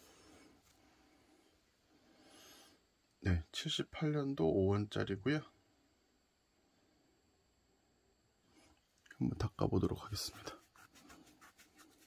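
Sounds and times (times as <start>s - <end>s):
tissue rubbing over coin: 10.2s - 12.0s.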